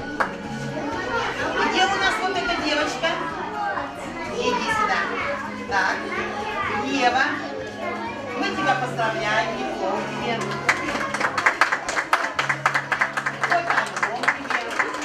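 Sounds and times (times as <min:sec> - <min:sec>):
children chattering and calling out: 0:00.0 - 0:12.6
background music: 0:00.0 - 0:15.0.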